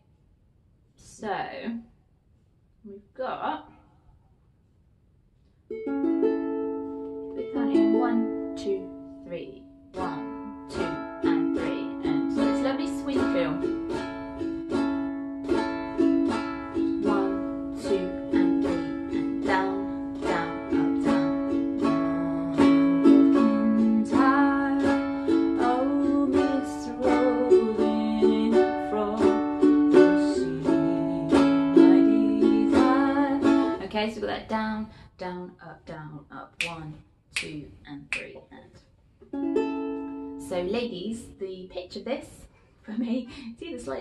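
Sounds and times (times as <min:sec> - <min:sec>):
ukulele strumming: 0:05.7 - 0:33.8, 0:39.2 - 0:41.2.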